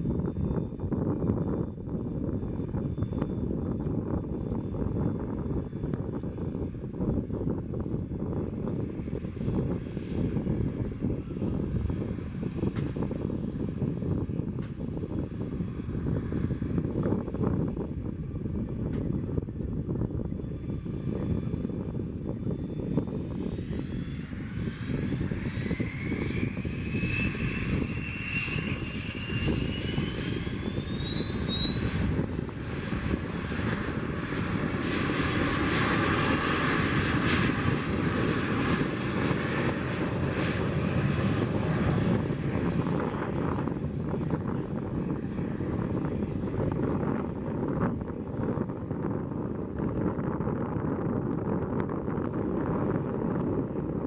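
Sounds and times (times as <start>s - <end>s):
jet engine roar: 0.0s - 54.0s
jet engine whine spooling up: 0.0s - 54.0s.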